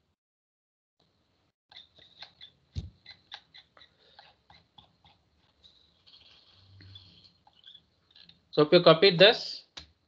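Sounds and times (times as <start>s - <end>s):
keyboard and mouse clicks: 1.7s - 5.6s.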